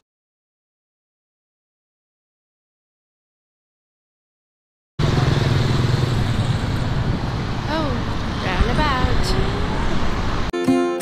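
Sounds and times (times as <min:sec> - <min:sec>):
cars passing: 0:05.0 - 0:10.5.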